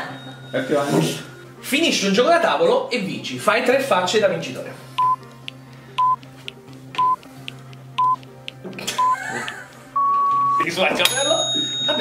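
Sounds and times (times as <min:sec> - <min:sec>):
timer beeping: 0:05.0 - 0:06.3, 0:07.0 - 0:08.3, 0:09.0 - 0:09.3, 0:10.0 - 0:10.8
background music with ticking beat: 0:05.0 - 0:12.0.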